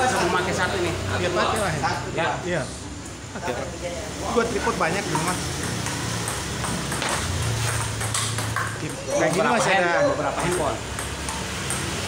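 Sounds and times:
table tennis ball clicks: 5.1s - 9.5s, 10.3s - 12.0s.

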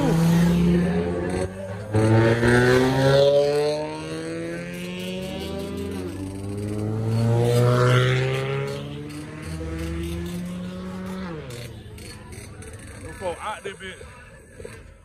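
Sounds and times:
cars driving past accelerating: 0.0s - 15.0s.

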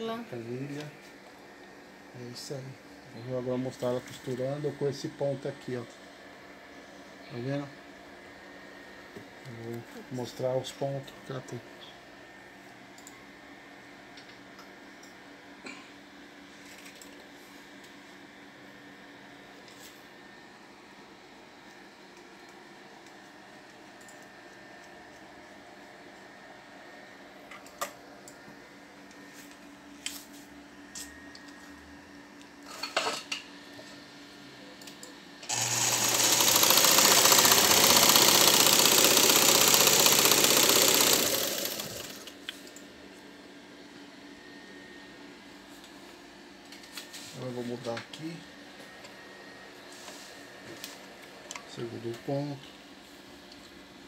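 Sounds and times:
sewing machine running: 35.5s - 42.4s.

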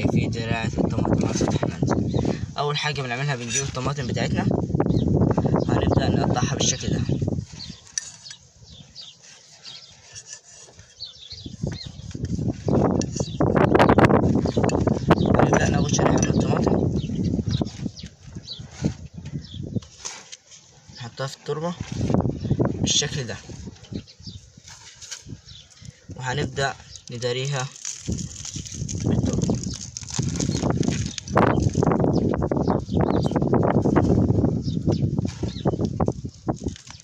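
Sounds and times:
knife sawing through tomato: 9.1s - 13.4s.

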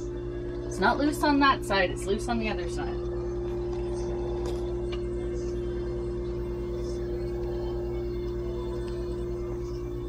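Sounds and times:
fluorescent light humming: 0.0s - 10.0s.

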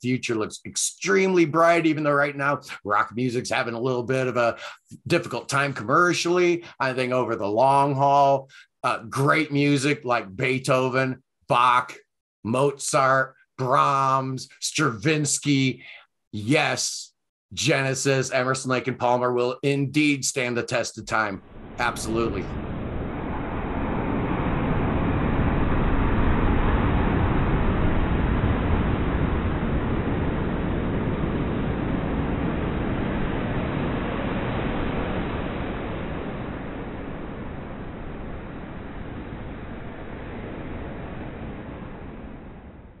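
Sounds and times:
rushing surf-like noise: 21.4s - 43.0s.

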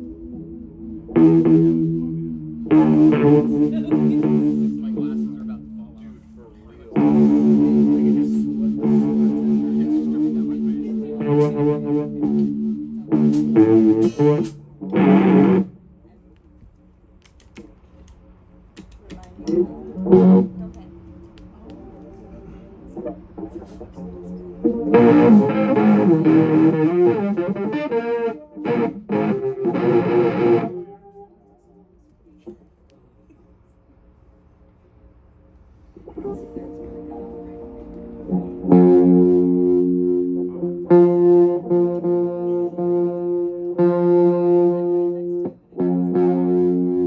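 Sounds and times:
electric guitar chord: 0.0s - 15.9s, 19.5s - 31.3s, 36.0s - 47.0s
steady low tone: 0.0s - 17.1s, 19.4s - 47.0s.

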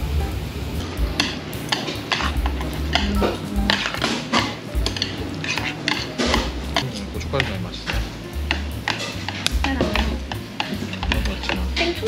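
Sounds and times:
chopsticks clinking against a bowl: 1.2s - 12.0s.

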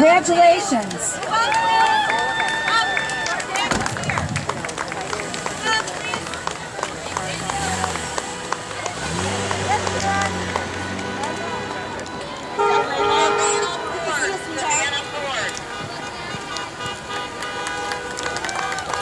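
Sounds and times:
people talking outdoors: 0.0s - 19.0s
car engine droning: 3.2s - 19.0s.

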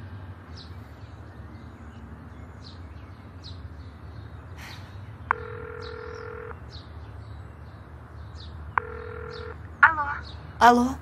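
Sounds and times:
phone line click: 5.3s - 6.6s
telephone ringback tone: 5.3s - 6.6s, 8.8s - 9.6s.

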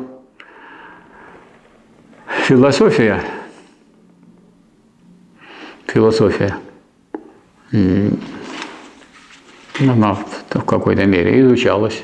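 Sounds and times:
faint room hum: 0.0s - 12.0s
man breathing in: 0.4s - 1.6s.

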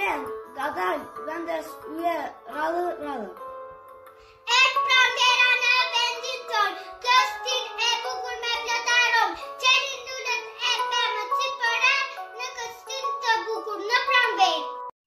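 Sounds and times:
music accompaniment: 0.0s - 14.9s
girl singing: 4.4s - 14.8s.

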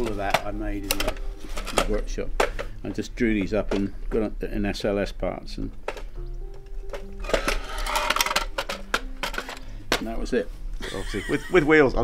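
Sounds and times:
plastic parts clicking and clattering: 0.0s - 4.3s, 5.7s - 10.1s
soft background music: 0.0s - 12.0s.

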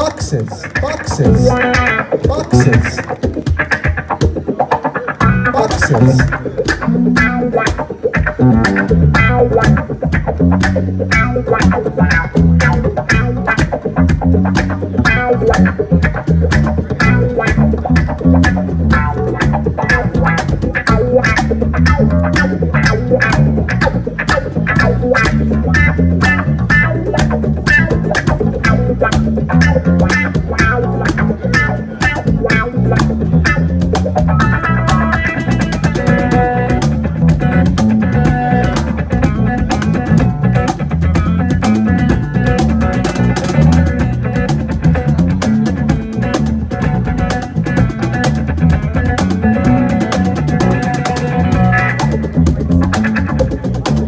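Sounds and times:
deep bass: 0.0s - 1.9s, 5.2s - 54.0s
cajon beat: 0.0s - 54.0s
cigar box guitar lead: 0.0s - 54.0s.

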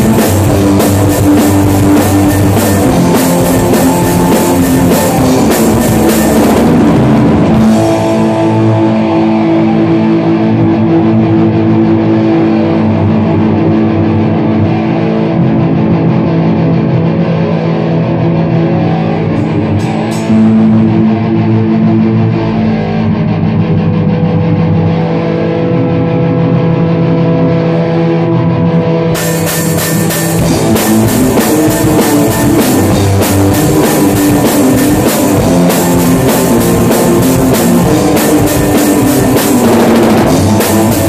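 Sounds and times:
electric guitar ringing chords: 0.0s - 41.0s.

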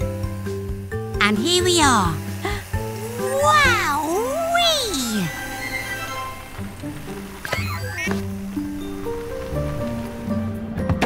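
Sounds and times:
background music: 0.0s - 11.0s
cartoon cat meow: 1.2s - 5.3s.

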